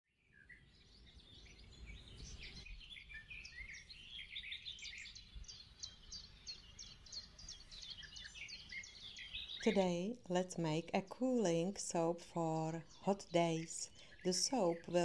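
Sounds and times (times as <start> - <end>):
small birds chirping: 0.2 - 15.0
soft background hiss: 9.6 - 15.0.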